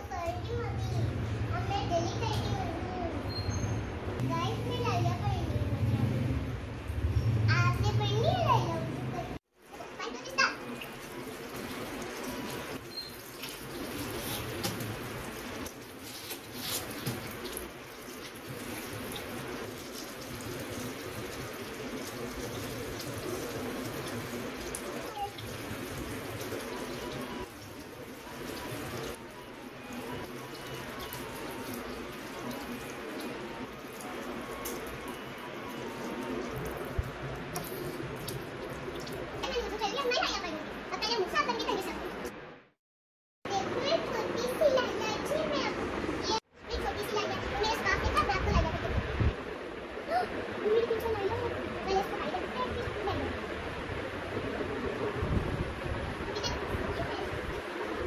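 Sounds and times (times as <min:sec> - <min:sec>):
running water: 0:07.1 - 0:42.4, 0:43.5 - 0:58.0.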